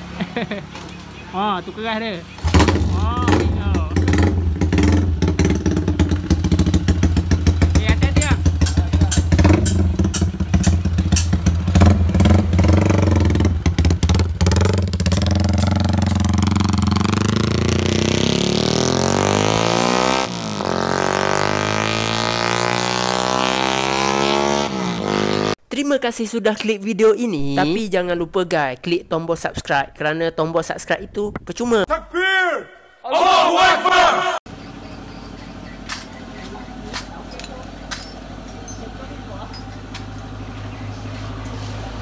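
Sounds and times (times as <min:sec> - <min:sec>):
motorcycle engine crackling: 0:00.4 - 0:18.4, 0:34.5 - 0:42.0
motorcycle accelerating away: 0:02.4 - 0:25.6.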